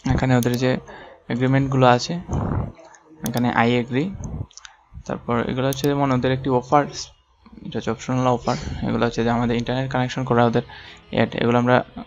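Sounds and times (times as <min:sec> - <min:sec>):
man speaking: 0:00.0 - 0:12.0
computer mouse clicking: 0:00.2 - 0:00.7, 0:02.3 - 0:03.6, 0:05.6 - 0:06.0.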